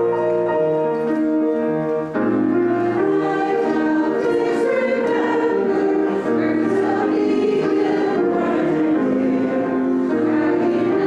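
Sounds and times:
congregation singing a hymn: 0:02.2 - 0:11.0.

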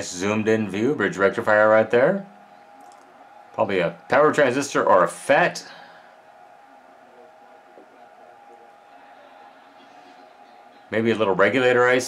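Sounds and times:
faint high-pitched hum: 0:00.0 - 0:12.0.

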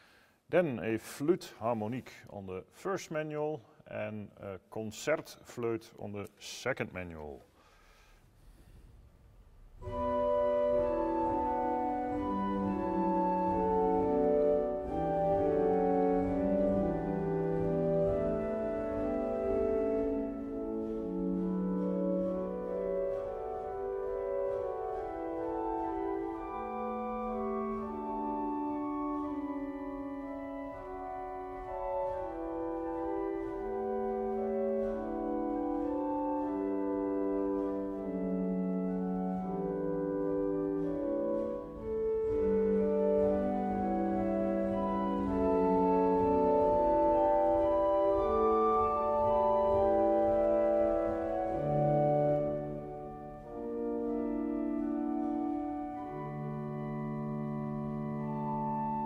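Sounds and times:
pipe organ held chords: 0:09.7 - 0:59.0.

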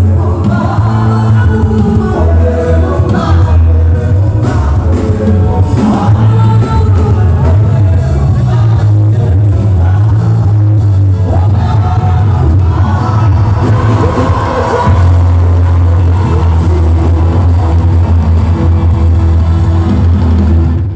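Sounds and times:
people singing: 0:00.0 - 0:20.1
heavy bass line: 0:00.0 - 0:20.9
live band music: 0:00.0 - 0:20.9.

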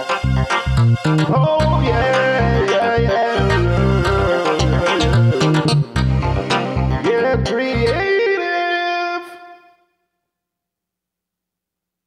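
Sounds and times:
bass and drum hits: 0:01.6 - 0:02.6, 0:03.6 - 0:07.0
held synth note: 0:01.8 - 0:08.1.

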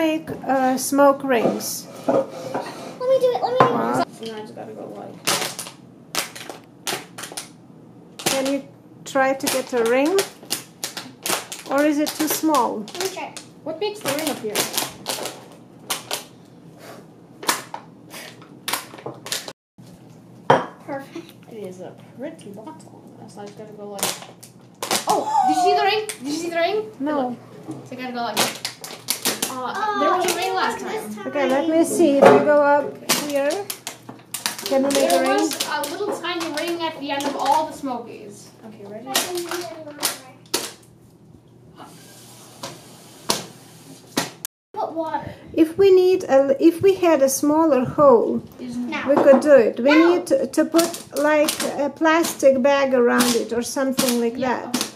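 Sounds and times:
plastic bottle crackling: 0:08.2 - 0:08.6, 0:09.4 - 0:16.3, 0:24.0 - 0:25.2, 0:28.3 - 0:30.7, 0:33.0 - 0:37.7, 0:39.1 - 0:40.8, 0:50.7 - 0:54.9.

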